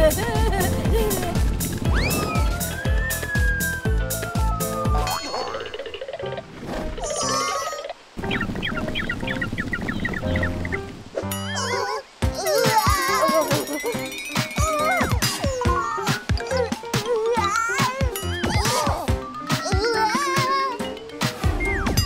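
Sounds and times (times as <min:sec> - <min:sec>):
children's background music: 0:00.0 - 0:07.8, 0:10.2 - 0:22.0
wobbly chirping tones: 0:01.5 - 0:06.5, 0:07.2 - 0:12.1, 0:13.4 - 0:15.6.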